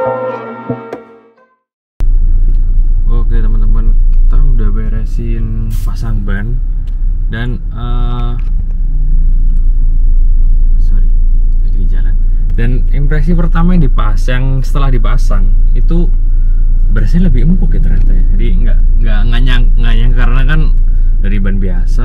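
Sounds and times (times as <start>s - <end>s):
road and engine rumble in car: 2.0s - 22.0s.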